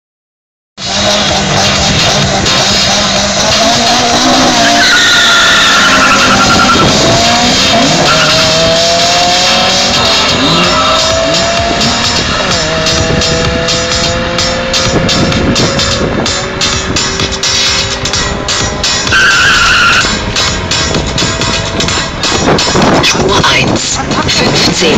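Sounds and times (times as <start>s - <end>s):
car engines revving: 0.8s - 24.9s
tyre squeal: 4.0s - 7.0s, 7.8s - 8.5s, 19.1s - 20.1s.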